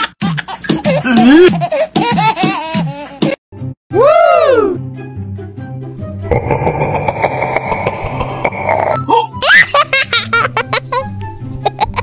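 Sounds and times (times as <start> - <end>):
background music: 0.8 - 12.0.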